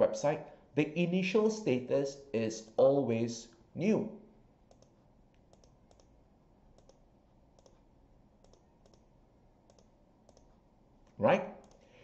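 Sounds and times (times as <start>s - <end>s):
mouse and keyboard clicking: 4.7s - 6.2s, 6.8s - 7.0s, 7.6s - 7.8s, 8.4s - 9.1s, 9.7s - 10.6s, 11.6s - 11.9s.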